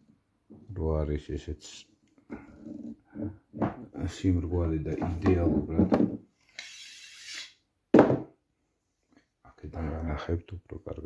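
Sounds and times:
man speaking in a low voice: 0.6 - 1.9, 3.9 - 6.0, 9.4 - 11.0.

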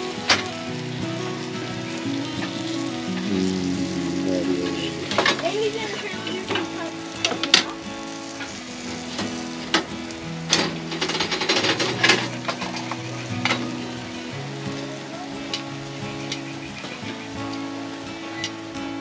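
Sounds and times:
background music with held notes: 0.0 - 19.0
bread sizzling in frying pan: 0.0 - 19.0.

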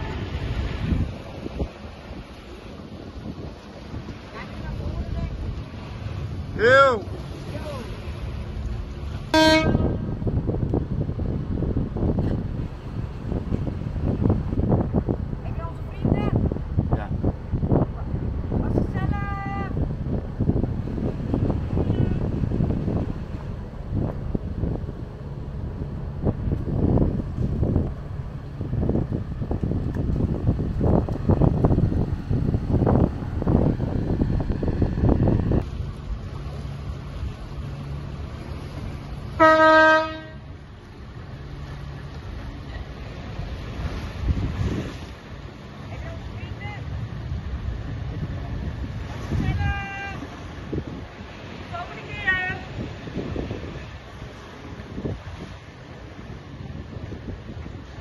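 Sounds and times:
gusty wind rumble: 0.0 - 58.0
low engine hum: 0.0 - 58.0
boat horn blast: 9.2 - 10.1, 39.3 - 40.6.

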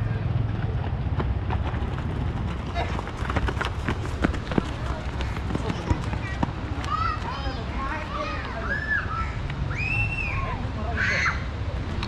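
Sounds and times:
footsteps running on dirt: 0.6 - 6.7.

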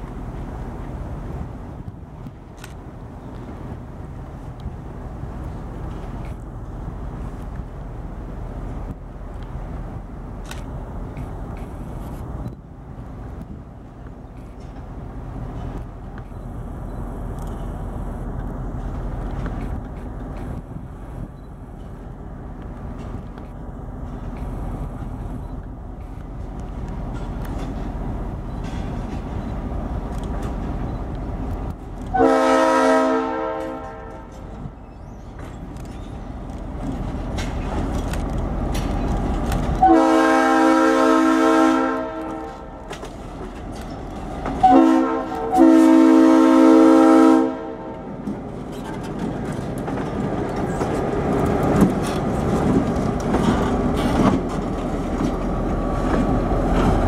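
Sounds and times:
diesel locomotive engine rumble: 0.0 - 57.0
train horn blasts: 32.1 - 34.4, 39.8 - 42.8, 44.6 - 48.1.

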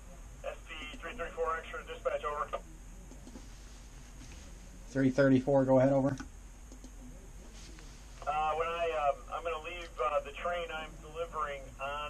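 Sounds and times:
man's voice over two-way radio: 0.5 - 2.6, 8.3 - 12.0.

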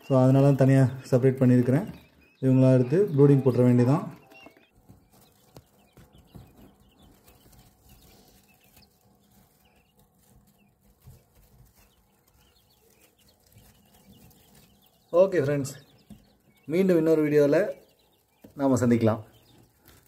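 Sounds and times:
chicks peeping: 0.0 - 20.0.

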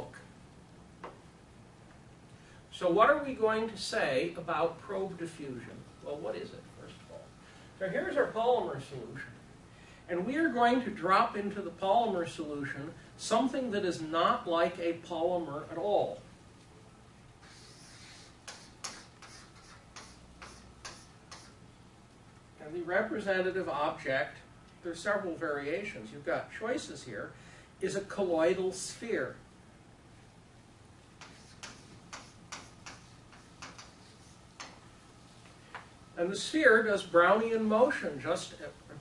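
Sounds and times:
chalk on a blackboard: 17.4 - 21.6, 31.2 - 34.8.

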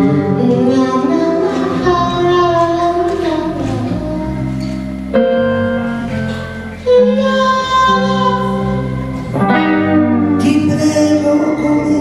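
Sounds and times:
blues band playing: 0.0 - 12.0
woman singing long notes: 0.0 - 12.0.

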